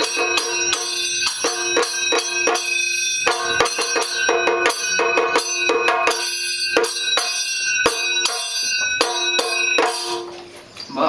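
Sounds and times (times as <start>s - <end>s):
metal cymbals clashing: 0.0s - 10.6s.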